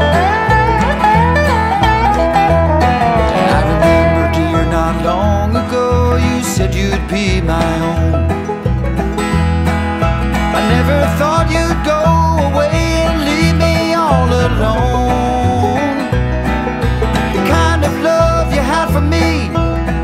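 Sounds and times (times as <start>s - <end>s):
bluegrass string band playing: 0.0s - 20.0s.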